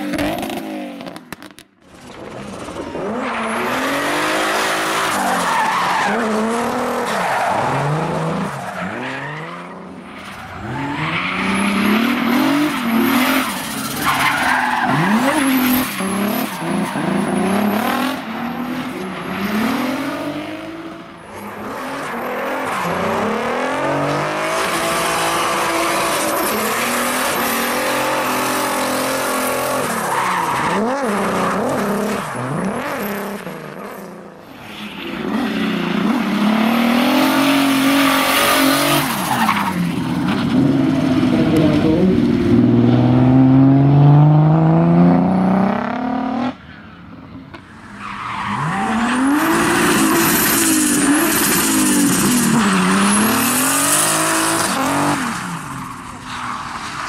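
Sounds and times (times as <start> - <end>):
tyres skidding and squealing: 0.0 - 57.0
car engine revving hard: 48.9 - 55.4.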